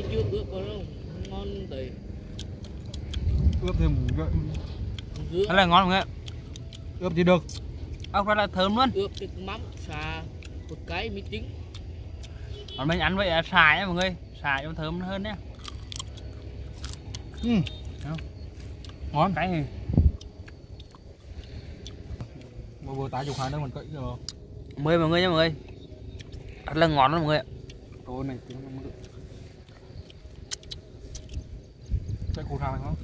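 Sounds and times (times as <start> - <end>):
low rumble: 0.0 - 33.0
mouth chewing clicks: 0.6 - 22.9, 23.7 - 33.0
sharp clicks: 25.6 - 31.5.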